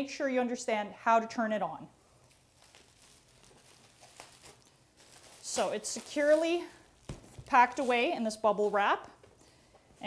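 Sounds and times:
bubble wrap crinkling: 2.0 - 9.2.

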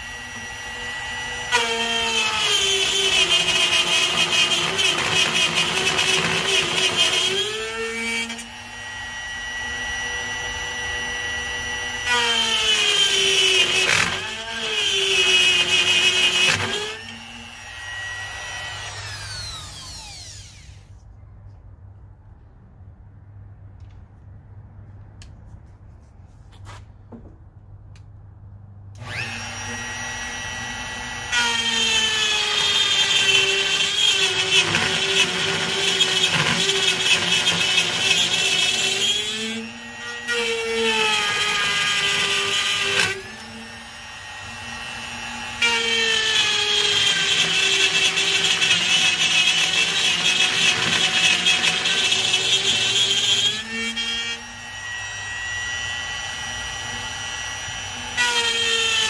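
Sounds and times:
electric router cutting acrylic: 0.0 - 20.9, 29.0 - 59.0.

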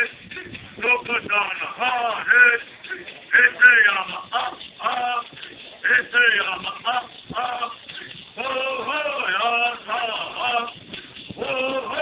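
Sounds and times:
men singing: 0.0 - 12.0.

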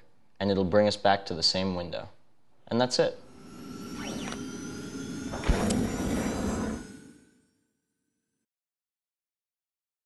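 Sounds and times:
sweeping tone: 3.0 - 7.9
whoosh: 3.2 - 7.6.

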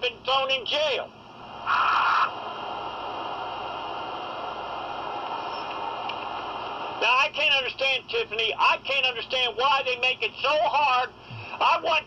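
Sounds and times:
phone line hiss: 5.4 - 5.8.

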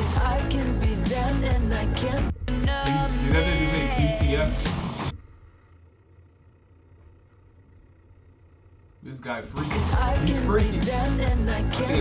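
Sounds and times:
pop music: 0.0 - 5.2, 9.6 - 12.0
low steady hum: 0.1 - 12.0.

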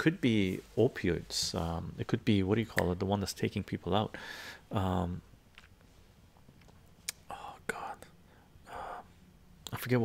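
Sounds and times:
man speaking: 0.0 - 5.3
man whispering: 7.0 - 10.0.

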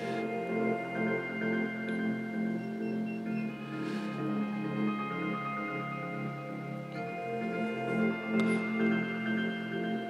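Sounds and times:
ambient music with sustained tones: 0.0 - 10.0.

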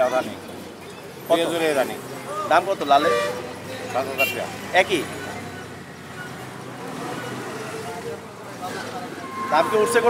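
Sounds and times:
men talking: 0.0 - 5.7, 6.7 - 10.0
vehicle horn toot: 4.2 - 4.4.

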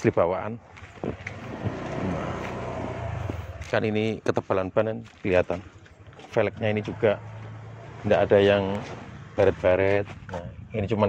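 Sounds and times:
vehicle engine hum: 0.6 - 11.0.

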